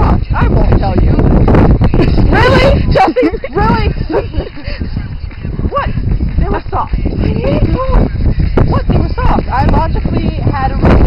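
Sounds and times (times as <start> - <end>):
low rumble on microphone: 0.0 - 11.0
women laughing hard: 2.0 - 4.9.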